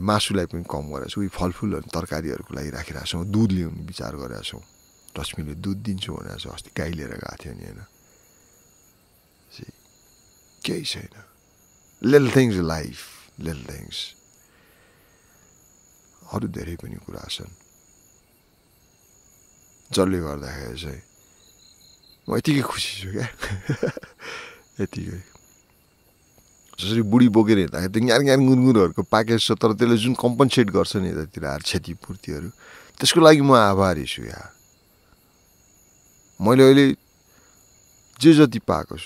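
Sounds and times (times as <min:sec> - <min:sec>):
crickets chirring: 0:00.0 - 0:39.0
person speaking: 0:12.0 - 0:14.1, 0:22.3 - 0:25.3.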